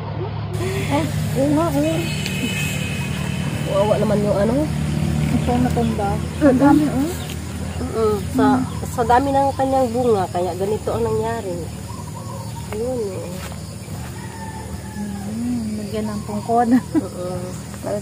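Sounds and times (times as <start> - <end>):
women talking: 0.6 - 2.8, 3.5 - 11.9, 12.6 - 13.7, 14.9 - 18.0.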